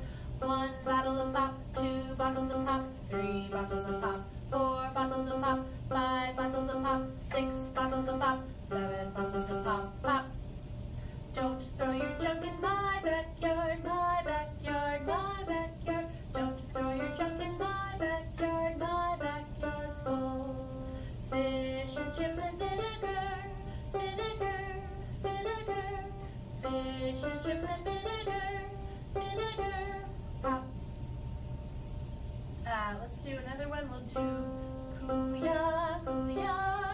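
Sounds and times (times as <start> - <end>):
breaths: 0.0 - 0.4, 10.9 - 11.3, 20.9 - 21.2
woman singing warm-up: 0.0 - 10.4, 11.3 - 30.8, 32.6 - 36.9
steady low hum: 0.0 - 36.9.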